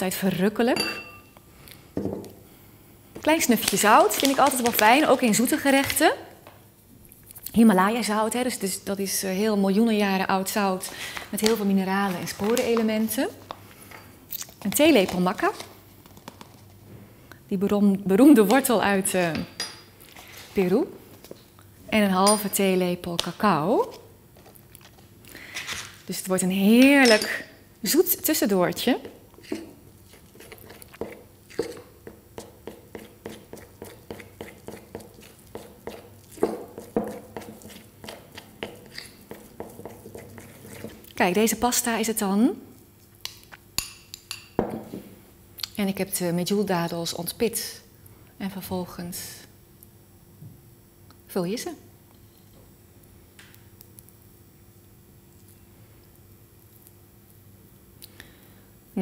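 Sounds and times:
fork mashing paste in bowl: 28.7 - 42.0
teaspoon scraping ceramic plate: 29.4 - 41.1.

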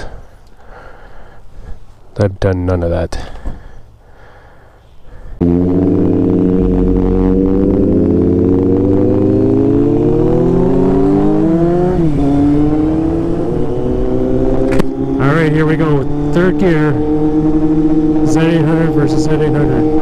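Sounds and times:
motorcycle engine running: 5.4 - 20.0.

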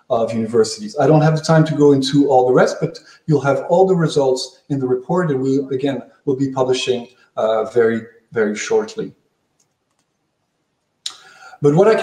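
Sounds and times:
man speaking: 0.0 - 9.1, 11.1 - 12.0
faint computer clicks: 9.6 - 10.2.

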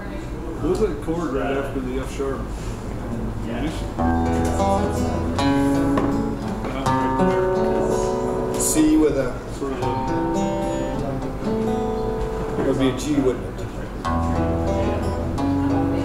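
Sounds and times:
acoustic guitar chords: 3.8 - 16.0.

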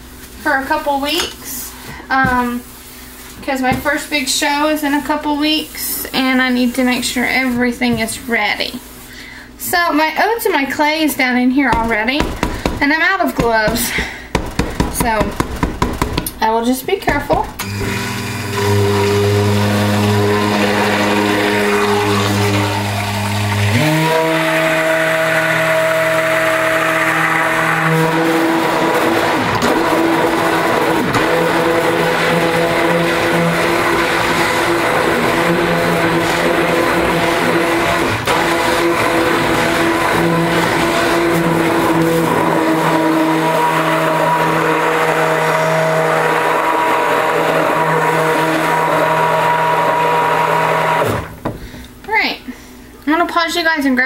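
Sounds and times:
stick blender motor hum: 17.1 - 51.6.

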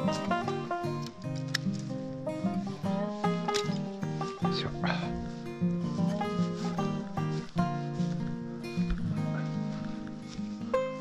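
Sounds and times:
strummed acoustic guitar chords: 0.0 - 11.0.

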